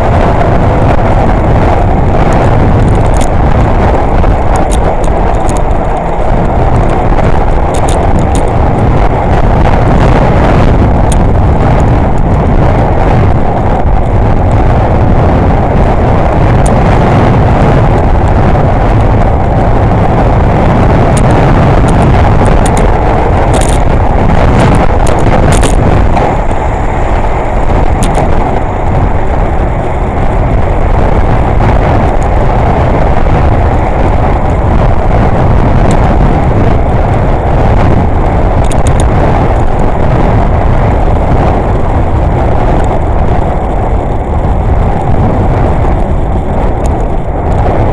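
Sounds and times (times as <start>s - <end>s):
road traffic noise: 0.0s - 47.9s
wind rush: 0.0s - 47.9s
sharp clicks: 21.9s - 24.0s, 27.9s - 28.4s.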